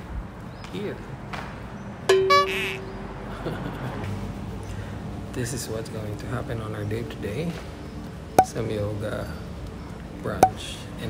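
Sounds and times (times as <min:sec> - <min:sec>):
bright pitched blip: 0:08.4 - 0:08.6.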